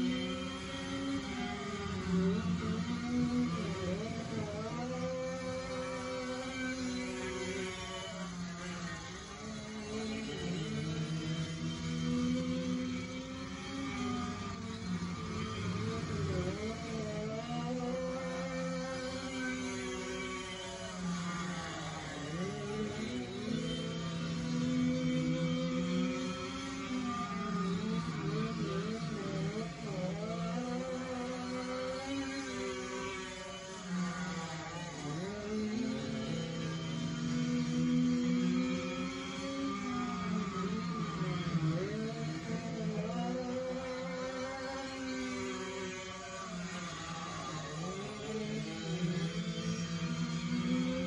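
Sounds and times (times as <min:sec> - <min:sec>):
go-kart engines buzzing: 0:00.0 - 0:51.0.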